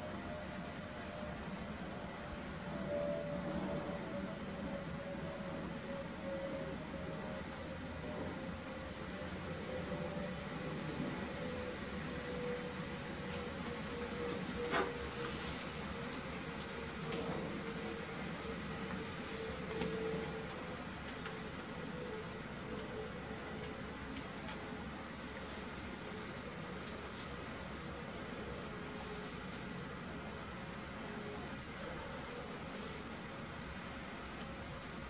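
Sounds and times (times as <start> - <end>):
computer fans whirring: 0.0 - 35.0
faint hum: 0.0 - 35.0.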